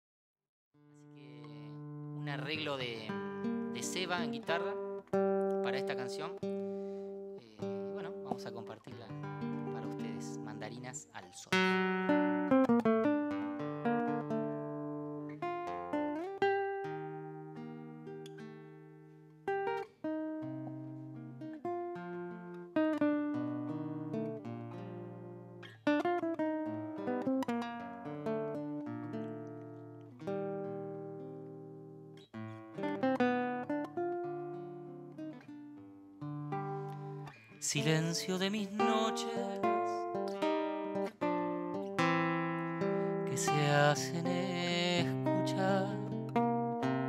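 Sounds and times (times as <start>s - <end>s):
acoustic guitar arpeggios: 0.8s - 47.0s.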